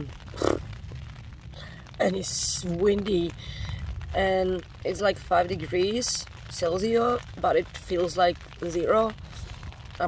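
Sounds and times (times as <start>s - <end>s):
rain and wind on a tent: 0.0s - 10.0s.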